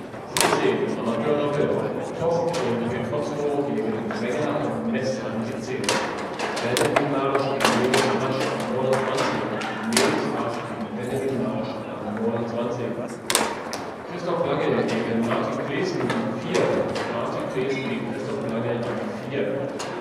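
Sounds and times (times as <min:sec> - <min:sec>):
background chatter of voices: 0:00.0 - 0:20.0
foosball ball and rods knocking: 0:05.8 - 0:10.3.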